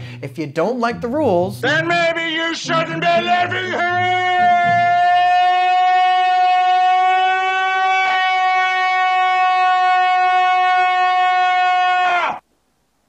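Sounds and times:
man screaming: 1.9 - 12.4.

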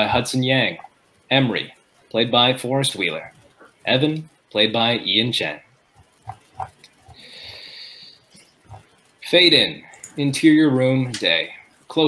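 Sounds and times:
breathy hiss: 7.0 - 8.5.

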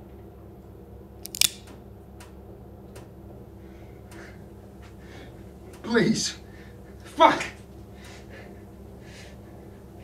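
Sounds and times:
handgun being cocked: 1.2 - 1.7.

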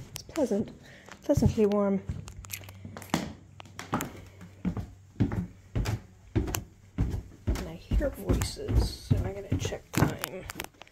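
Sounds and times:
footsteps on wooden stairs: 1.2 - 10.7.

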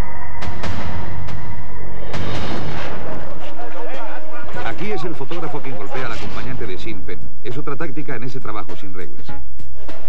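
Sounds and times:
booming drum hit: 0.0 - 7.4.

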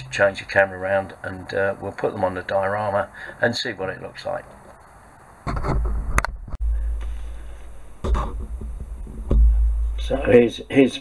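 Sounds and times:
microphone handling rumble: 5.4 - 11.0
knocks and clicks: 5.5 - 10.2.

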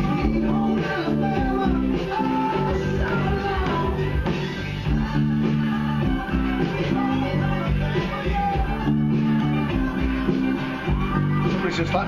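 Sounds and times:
band with drums and guitar: 0.0 - 12.0
electric bass guitar: 0.0 - 12.0.

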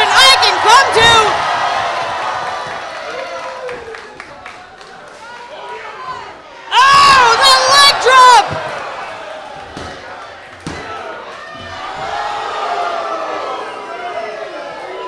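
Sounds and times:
loud shout: 0.0 - 4.1, 5.5 - 9.4
crowd noise in a large hall: 0.0 - 15.0.

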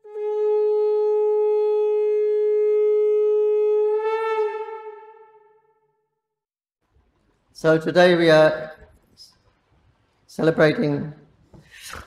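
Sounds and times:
conch shell blown: 0.0 - 6.0.

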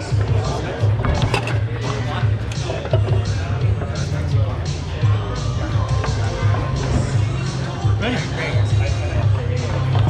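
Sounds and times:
background music with a beat: 0.0 - 10.0
voices: 0.0 - 10.0.

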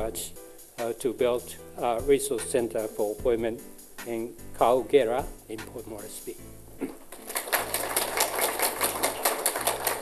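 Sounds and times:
audience applauding: 7.1 - 10.0.

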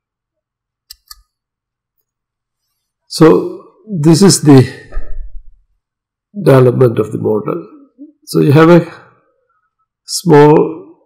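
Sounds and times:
computer mouse clicks: 0.9 - 1.3.

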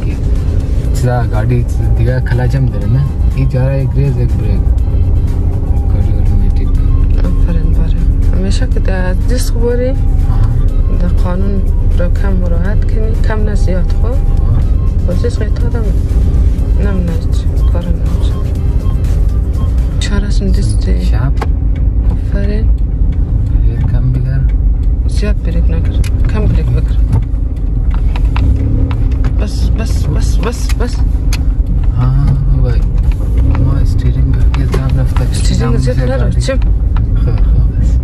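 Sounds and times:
music: 0.0 - 22.0
voices: 0.0 - 27.5, 29.2 - 38.0
engine and road rumble: 0.0 - 38.0.

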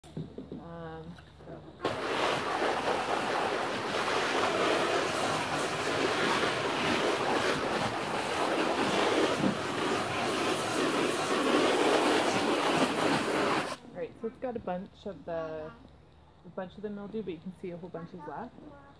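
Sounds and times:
hose spraying water: 1.8 - 13.8.

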